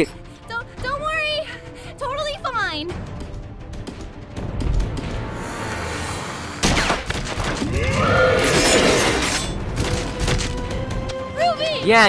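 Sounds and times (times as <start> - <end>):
action music: 0.0 - 12.0.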